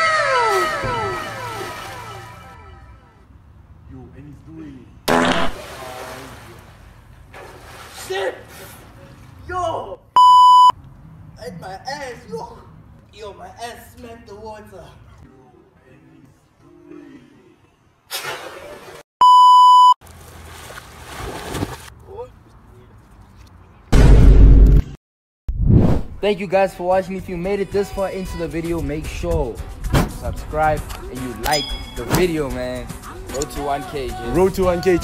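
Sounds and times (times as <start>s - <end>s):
person splashing into pool: 5.1s - 6.8s, 20.0s - 21.9s
water churning: 5.5s - 9.4s
censor bleep: 10.2s - 10.7s, 19.2s - 20.0s.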